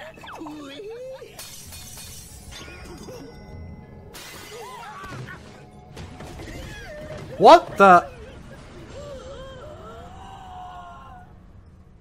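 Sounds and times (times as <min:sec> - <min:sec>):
soundtrack music: 0:07.4 - 0:08.8.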